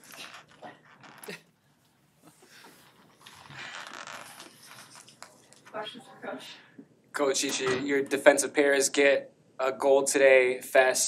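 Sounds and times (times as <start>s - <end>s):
paper and clothing rustling: 2.8s - 5.9s.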